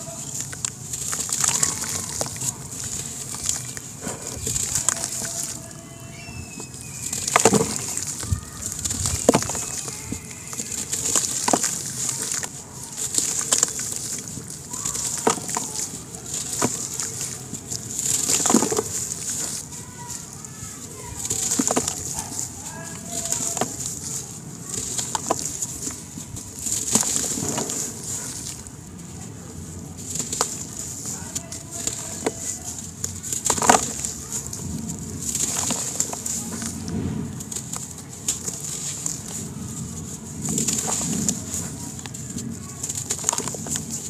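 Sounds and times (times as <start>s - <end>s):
sand-cement block crushed in hands: 0.0s - 44.0s
sharp crackles: 0.0s - 44.0s.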